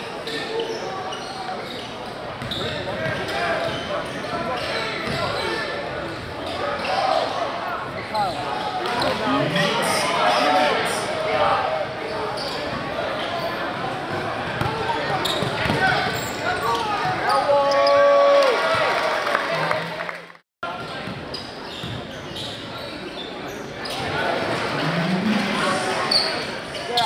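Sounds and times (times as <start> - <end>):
murmur of crowd voices: 0.0 - 27.0.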